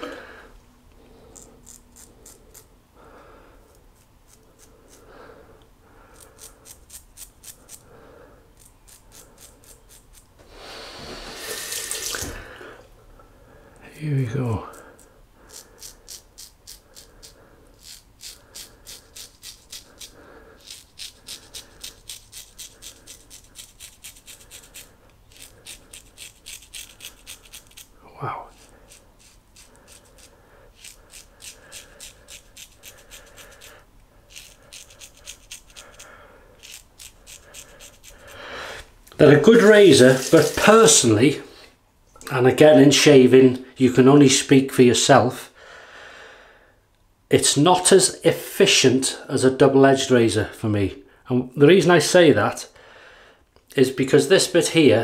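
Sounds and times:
razor scraping stubble: 1.2 - 2.8, 3.7 - 5.1, 6.1 - 7.9, 8.6 - 10.4, 14.7 - 38.4, 39.2 - 41.2
running water: 11.5 - 12.5, 39.2 - 41.2.

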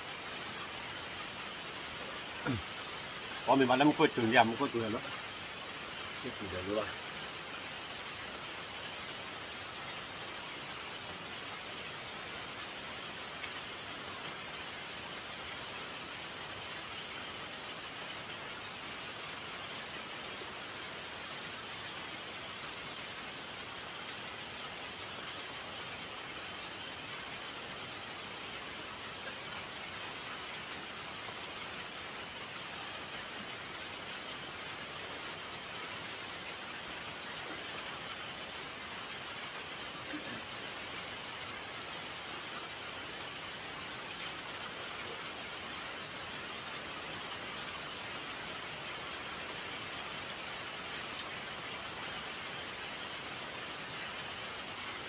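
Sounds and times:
steady rain falling: 0.0 - 55.0.

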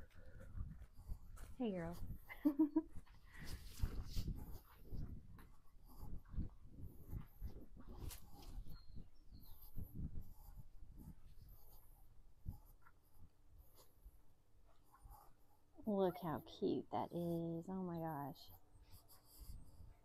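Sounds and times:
piglets scratching and rustling: 3.4 - 16.8.

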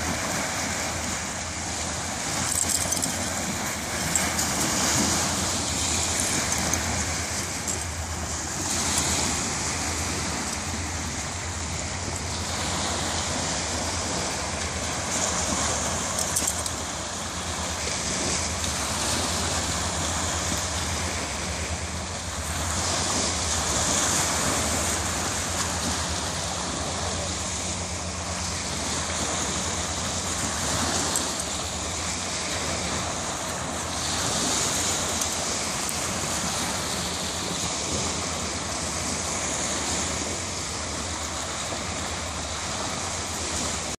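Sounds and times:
small waves washing onto beach: 0.0 - 44.0
wind rumble on microphone: 0.0 - 44.0.

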